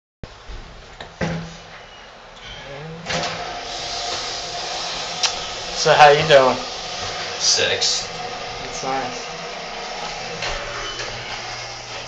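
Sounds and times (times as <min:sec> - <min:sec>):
elevator motor whine: 0:01.8 - 0:12.0
elevator rushing hum: 0:03.0 - 0:12.0.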